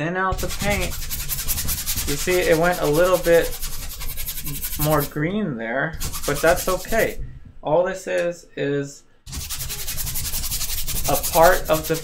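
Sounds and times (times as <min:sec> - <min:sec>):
paintbrush scrubbing on canvas: 0:00.3 - 0:05.2, 0:06.0 - 0:07.2, 0:09.3 - 0:12.0.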